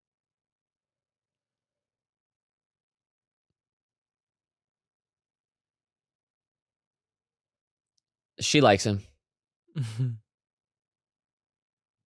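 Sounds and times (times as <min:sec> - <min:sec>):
man chuckling: 0:09.8 - 0:10.2.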